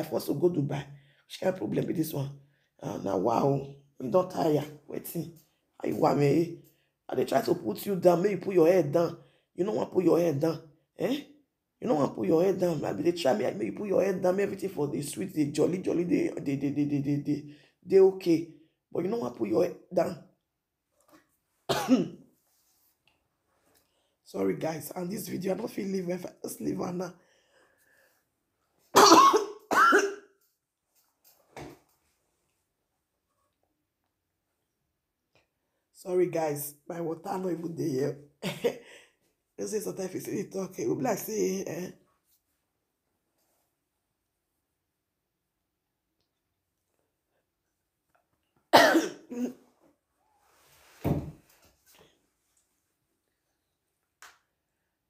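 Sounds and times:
woman coughing: 21.7s - 22.2s, 29.0s - 30.3s, 48.8s - 49.6s.

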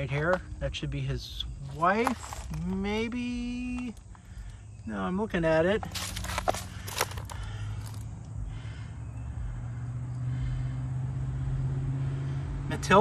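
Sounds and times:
motor vehicle passing: 6.1s - 13.0s.

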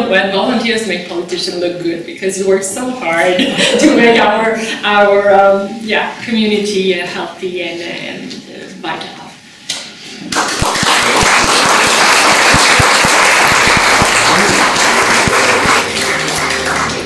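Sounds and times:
audience applauding: 10.3s - 17.0s
music: 14.0s - 17.0s.

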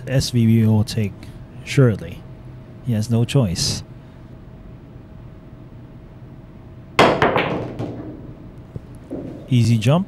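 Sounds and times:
cue striking cue ball: 7.0s - 8.4s, 9.1s - 9.5s
pool balls clacking: 7.0s - 8.4s, 9.0s - 9.5s.

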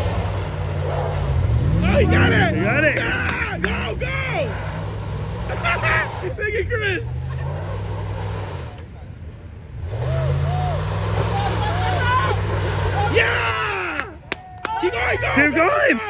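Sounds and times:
truck engine revving high: 0.0s - 9.0s, 9.6s - 14.2s.

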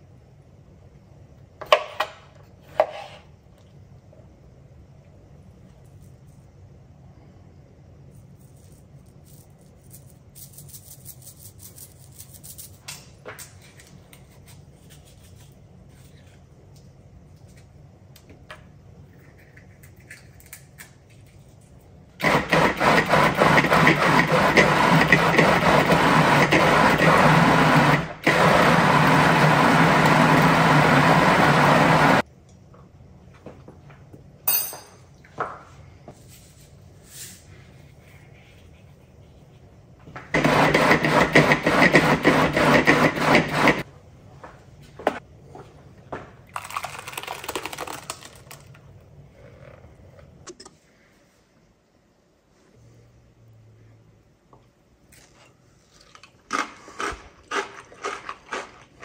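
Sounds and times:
food processor motor running: 22.2s - 32.2s, 40.4s - 43.8s.

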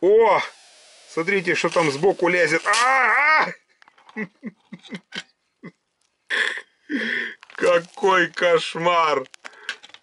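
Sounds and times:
man's drawn-out exclamation: 2.5s - 3.6s.

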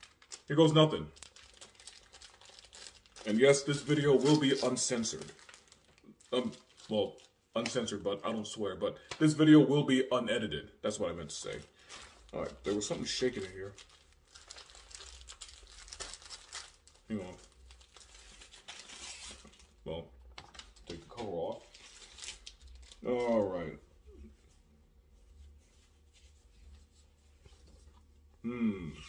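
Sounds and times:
packaging crinkling and tearing: 0.0s - 7.9s, 11.4s - 23.4s.

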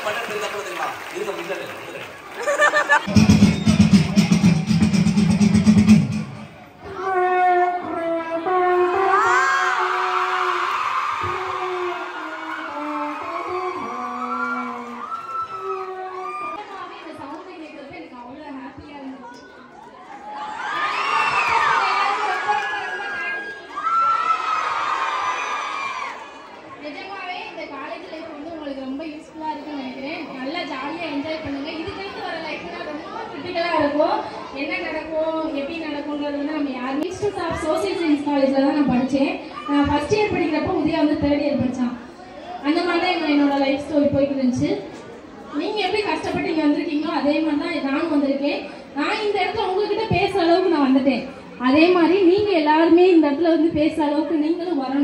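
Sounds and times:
audience chatter: 0.0s - 53.0s.

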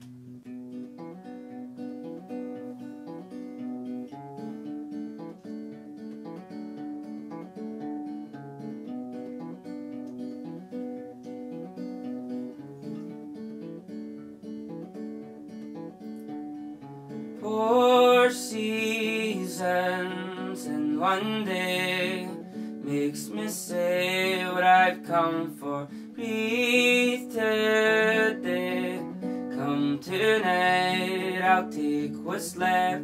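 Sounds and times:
acoustic guitar picking pattern: 0.0s - 33.0s.

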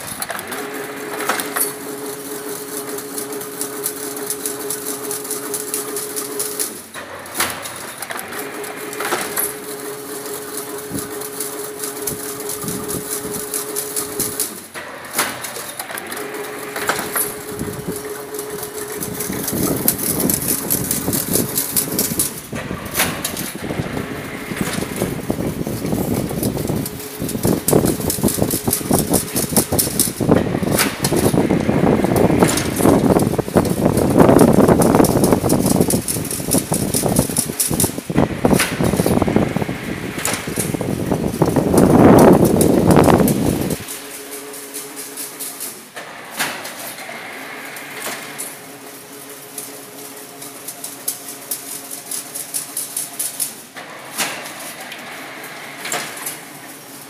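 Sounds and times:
mechanical rattle: 0.0s - 47.0s, 47.8s - 57.0s
fence making machine humming: 0.0s - 57.0s.

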